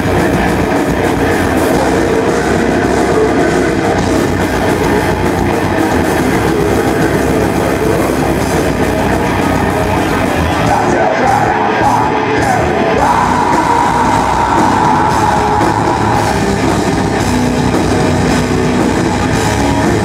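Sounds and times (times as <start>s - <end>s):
metal band playing: 0.0s - 20.0s.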